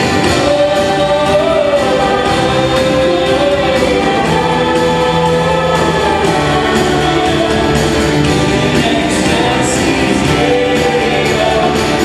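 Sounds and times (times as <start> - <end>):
acoustic guitar: 0.0 - 12.0
drums: 0.0 - 12.0
vocal ensemble singing: 0.0 - 12.0.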